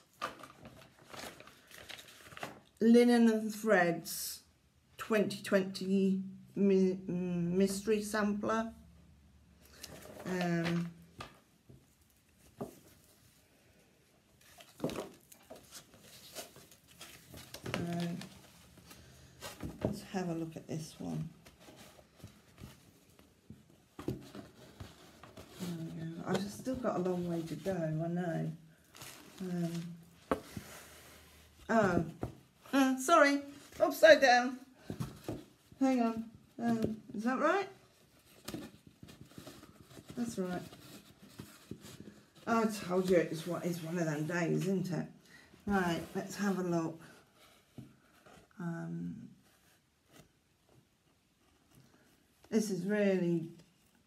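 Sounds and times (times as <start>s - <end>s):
paper sheets rustling: 0.2s - 2.7s.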